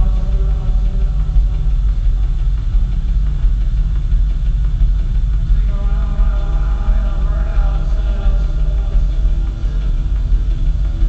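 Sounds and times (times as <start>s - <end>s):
distorted synthesizer drone: 0.0s - 11.0s
heavy pulsing bass: 0.0s - 11.0s.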